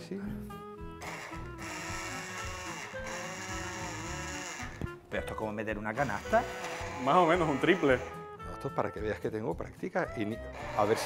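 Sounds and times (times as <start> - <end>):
background music: 0.0 - 11.0
immersion blender motor whirring: 1.0 - 4.9, 6.0 - 8.2, 10.5 - 11.0.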